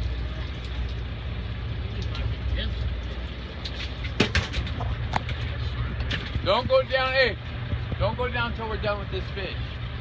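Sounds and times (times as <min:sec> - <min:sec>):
boat engine idling: 0:00.0 - 0:10.0.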